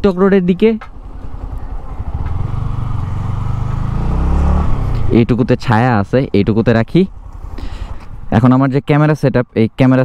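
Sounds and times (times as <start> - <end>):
motorcycle engine running: 0.4 - 5.8.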